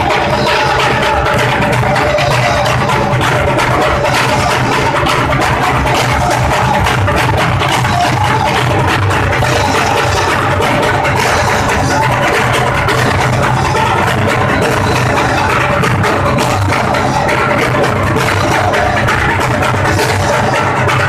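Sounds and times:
frame drums beating: 0.0 - 21.0
group chanting: 0.0 - 21.0.

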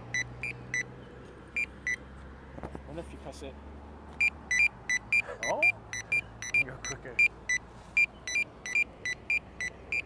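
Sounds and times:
crossing button beeps: 1.6 - 2.0, 4.2 - 10.0.

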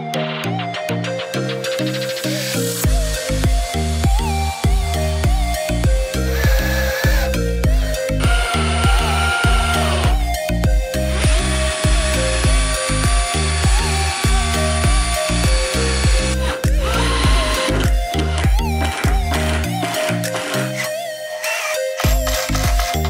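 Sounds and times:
background music with steady beat: 0.0 - 23.0
cordless drill whining into wood: 2.9 - 23.0.

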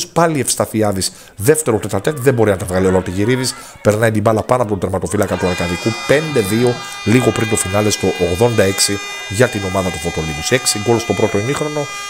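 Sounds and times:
man talking: 0.0 - 12.0
steady musical drone: 5.3 - 12.0.

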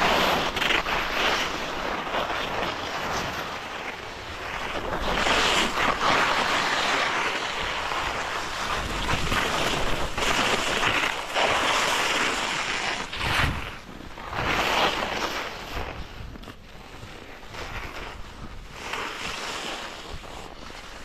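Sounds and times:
skis scraping over snow: 0.0 - 21.0
wind noise on microphone: 0.0 - 21.0.

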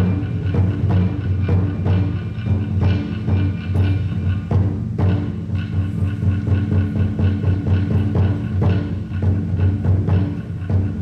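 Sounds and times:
taiko drum beats: 0.0 - 11.0.

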